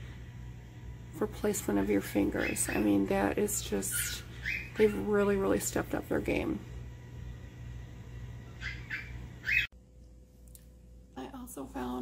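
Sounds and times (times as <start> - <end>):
electric fan humming: 0.0 - 12.0
high bird-like chirps: 4.4 - 4.9, 8.6 - 9.7.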